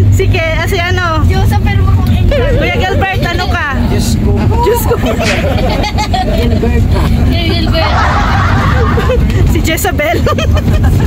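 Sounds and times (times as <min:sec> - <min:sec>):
people talking: 0:00.0 - 0:10.7
engine and road rumble in cabin: 0:00.0 - 0:11.0.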